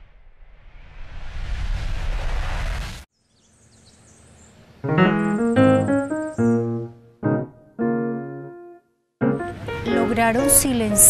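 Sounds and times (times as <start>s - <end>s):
loud wind-like rushing: 0.0s - 3.1s
low rumble: 0.0s - 3.1s
faint high bird chirps: 3.2s - 6.8s
piano: 4.8s - 11.0s.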